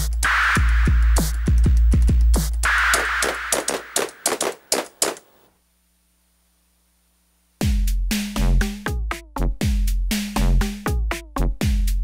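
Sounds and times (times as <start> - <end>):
drum machine percussive hits: 0.0 - 5.3.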